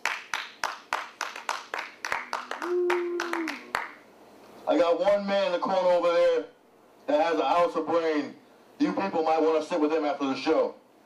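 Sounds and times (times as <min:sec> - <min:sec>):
hand clapping: 0:00.0 - 0:04.0
person calling out: 0:02.6 - 0:03.8.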